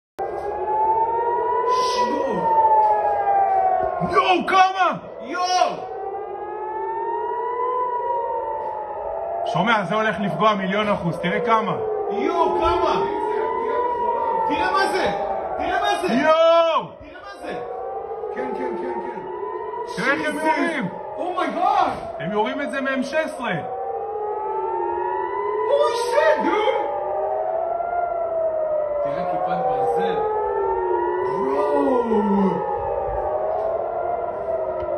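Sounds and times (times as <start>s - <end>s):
air-raid siren wailing: 0.2s - 34.9s.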